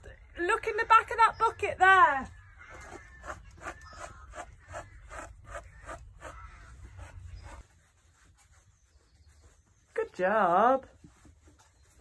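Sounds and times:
grooming brush strokes on coat: 0:03.0 - 0:12.0.

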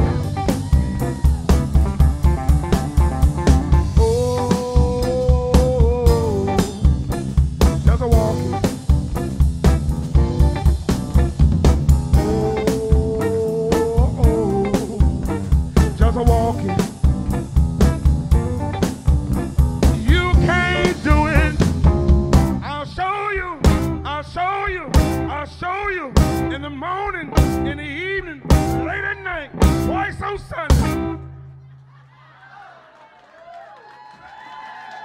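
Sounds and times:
drum kit: 0:00.0 - 0:31.3
bass guitar: 0:00.0 - 0:31.6.

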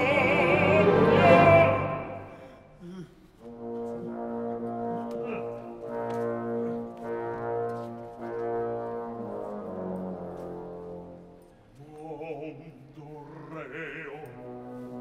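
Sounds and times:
orchestra playing held chords: 0:00.0 - 0:02.5.

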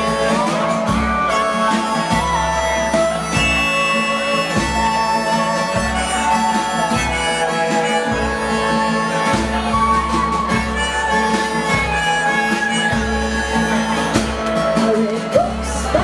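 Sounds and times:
bass: 0:00.0 - 0:16.0
drums: 0:00.0 - 0:16.0
pedal steel guitar sliding notes: 0:00.0 - 0:16.0
strummed acoustic guitar: 0:00.0 - 0:16.0.

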